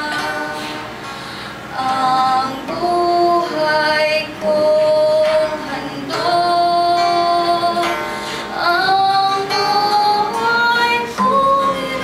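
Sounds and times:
acoustic guitar: 0.0 - 12.0
girl singing slow song: 0.0 - 12.0.

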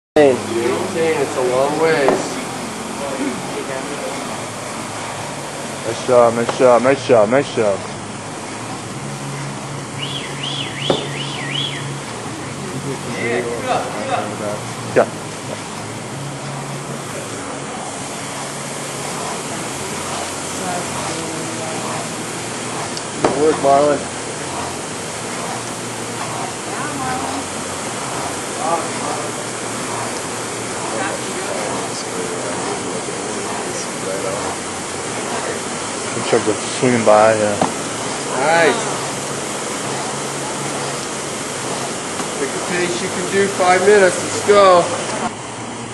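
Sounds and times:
warbling alarm tone: 9.8 - 12.1
faint voices: 12.1 - 45.4
flywheel whooshing: 15.3 - 45.3.

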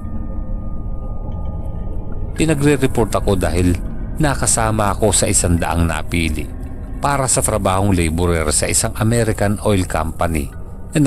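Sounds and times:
faint held high tone: 0.0 - 11.0
low steady music drone: 0.0 - 11.0.

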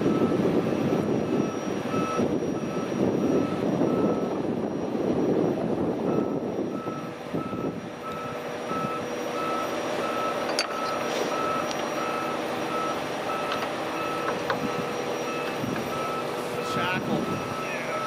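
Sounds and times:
backup alarm beeping: 0.0 - 18.0
diesel engines running: 0.0 - 18.0.

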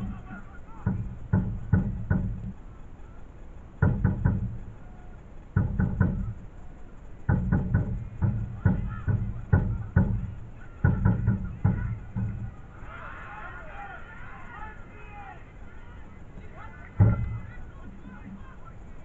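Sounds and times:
drum heavy thumps: 0.0 - 2.9, 3.6 - 19.0.

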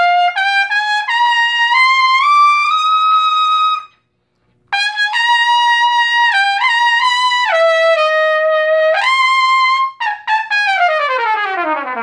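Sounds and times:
trumpet notes: 0.0 - 4.0, 4.7 - 12.0.

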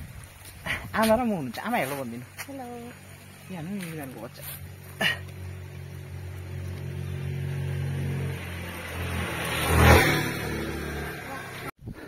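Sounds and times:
vehicle passing on road: 1.4 - 11.7.

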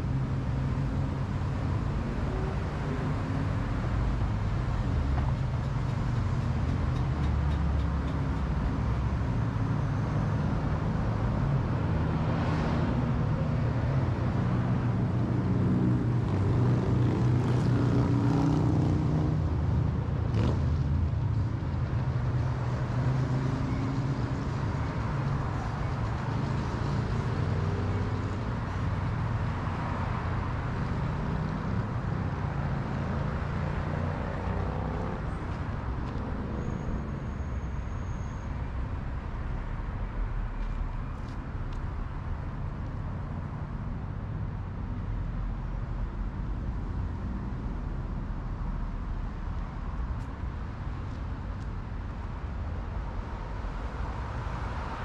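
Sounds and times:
passing road traffic: 0.0 - 55.0.

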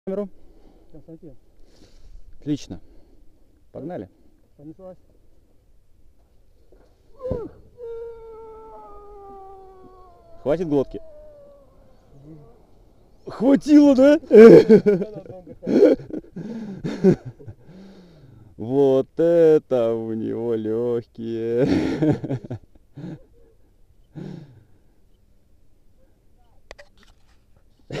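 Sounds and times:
loud gasping breath: 1.6 - 2.2, 16.4 - 16.9, 17.6 - 18.5, 24.1 - 24.8
man's long sustained yell: 7.2 - 12.7.

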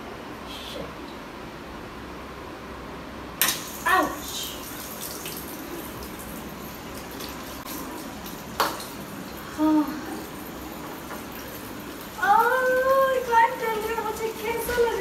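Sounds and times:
water running into sink: 3.4 - 15.0.

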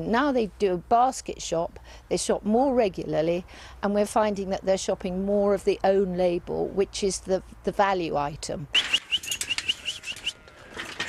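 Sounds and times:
rapid whistled chirps: 8.8 - 10.4.

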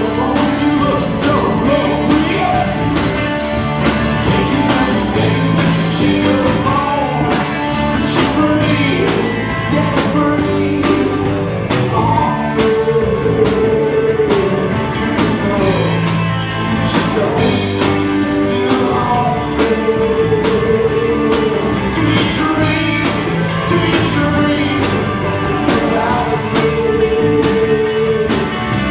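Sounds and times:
electric bass: 0.0 - 28.9
electric guitar: 0.0 - 28.9.

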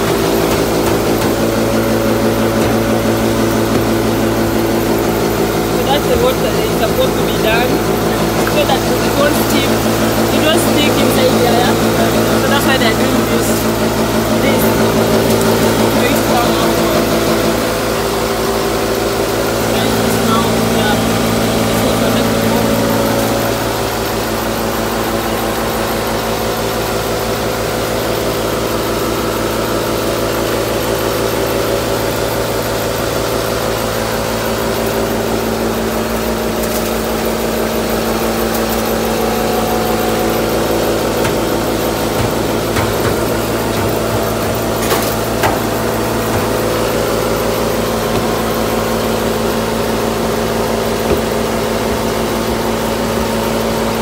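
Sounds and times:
mill motor hum: 0.0 - 28.9, 31.8 - 54.0
loud grinding noise: 0.0 - 54.0.

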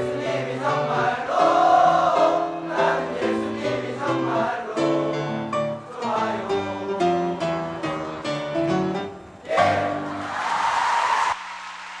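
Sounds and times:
audience applause: 10.1 - 12.0.

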